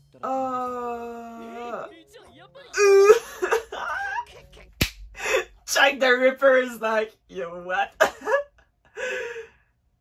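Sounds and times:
woman laughing: 2.7s - 5.4s, 8.0s - 9.4s
breathy gasp: 8.9s - 9.7s.

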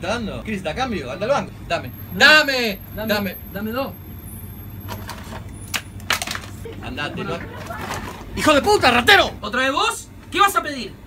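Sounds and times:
small items clicking and knocking: 4.9s - 6.6s.

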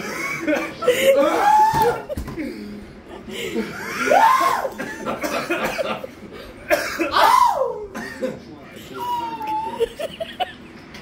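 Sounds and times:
people coughing: 0.0s - 9.0s.

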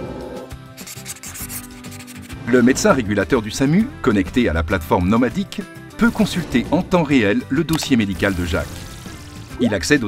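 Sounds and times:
marker scratching on whiteboard: 0.8s - 2.4s.

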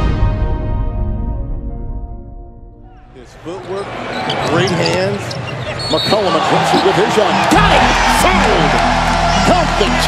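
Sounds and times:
background music: 0.0s - 3.9s, 6.3s - 10.0s
arena crowd noise: 3.0s - 10.0s.

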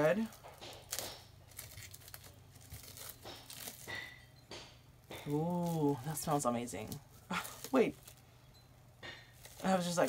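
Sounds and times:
plastic bag crinkling: 0.0s - 4.0s, 5.2s - 8.4s, 9.3s - 10.0s.

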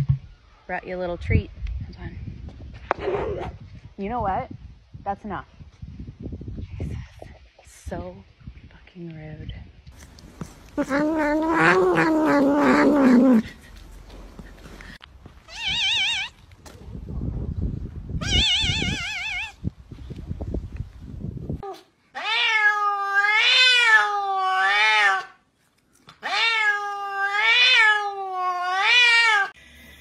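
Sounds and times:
soft low rustling: 9.4s - 15.5s
cat meowing: 10.8s - 13.4s, 15.5s - 16.4s, 18.2s - 19.6s, 22.2s - 25.4s, 26.2s - 29.6s.

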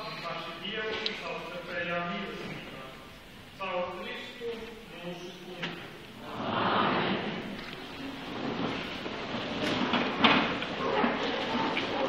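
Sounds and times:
people rustling and shuffling: 0.0s - 12.0s.

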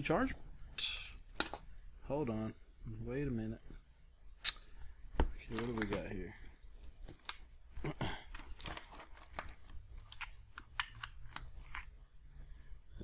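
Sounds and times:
crinkly rustles: 5.4s - 7.4s, 8.2s - 10.5s.

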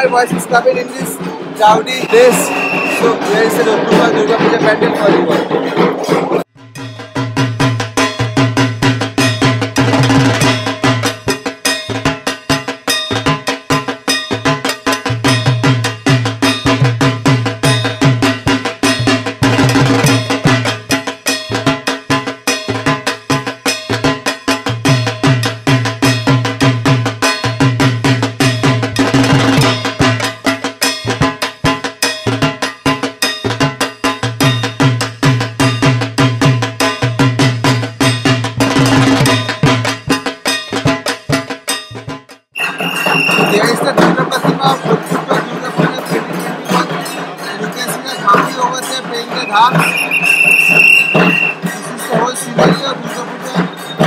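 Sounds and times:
steady high tone: 0.0s - 5.6s, 42.6s - 43.8s, 46.0s - 52.2s
crowd noise: 0.0s - 6.5s, 42.6s - 54.0s
barrel drums beaten fast: 0.0s - 54.0s.

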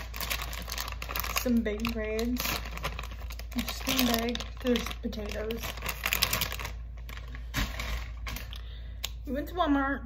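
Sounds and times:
plastic packaging crinkling: 0.0s - 8.8s.

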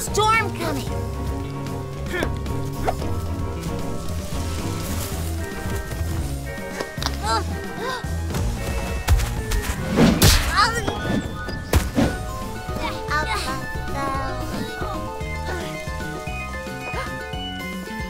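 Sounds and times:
cartoon music with bass line: 10.2s - 18.0s.

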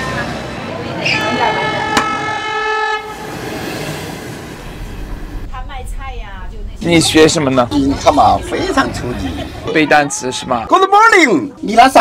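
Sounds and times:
steady background noise: 0.0s - 12.0s
train horn: 1.2s - 3.5s.

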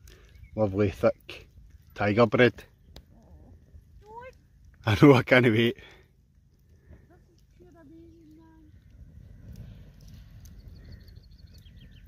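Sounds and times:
small bird chirping: 0.1s - 1.3s, 7.8s - 12.0s
low even rumble: 6.2s - 12.0s.

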